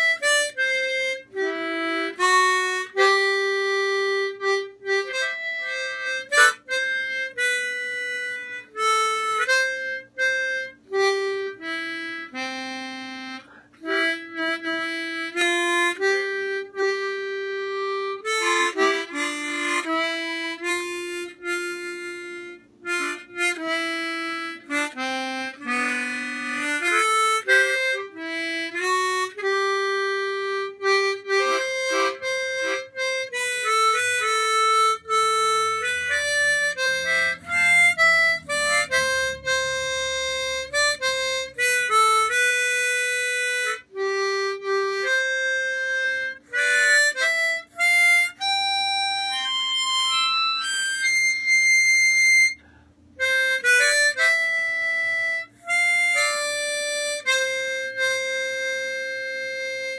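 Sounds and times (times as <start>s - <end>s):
harmonica melody: 0.0s - 59.9s.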